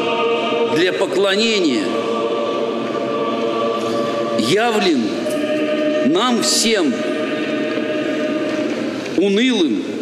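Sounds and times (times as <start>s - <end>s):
church choir holding a chord: 0.0s - 10.0s.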